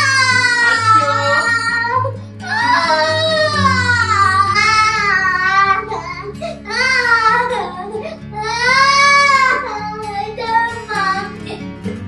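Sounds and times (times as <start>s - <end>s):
young boy crying: 0.0s - 11.9s
background music with low notes: 0.0s - 12.0s.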